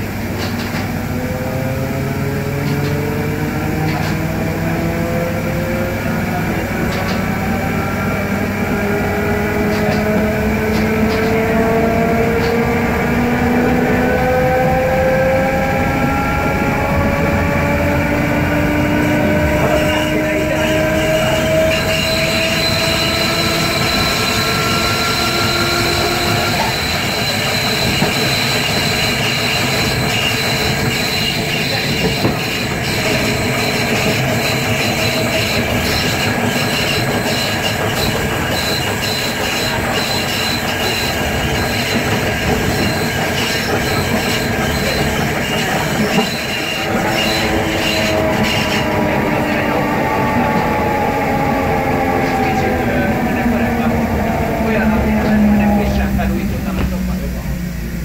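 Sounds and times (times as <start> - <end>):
electric traction motor whine: 0.0 - 58.0
wheel and rail noise: 0.0 - 58.0.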